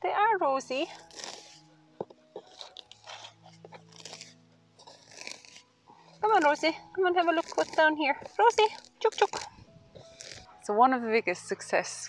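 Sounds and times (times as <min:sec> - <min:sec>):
rustling of garden plants: 0:00.7 - 0:01.6, 0:02.3 - 0:10.7.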